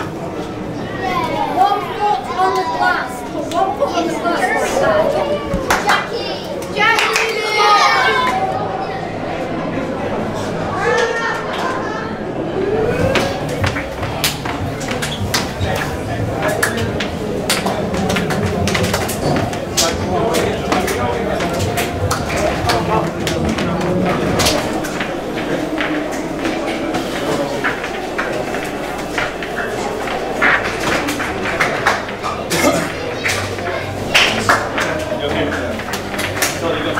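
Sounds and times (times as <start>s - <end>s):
people talking: 0.0s - 36.9s.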